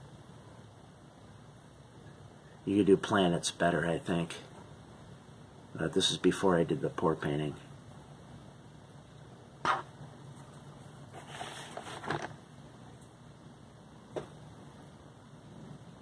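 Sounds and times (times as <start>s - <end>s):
rustling scuffle: 10.4s - 12.3s.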